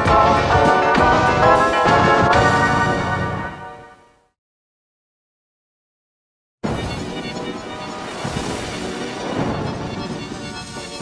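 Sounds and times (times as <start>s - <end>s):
logo jingle music: 0.0s - 4.3s.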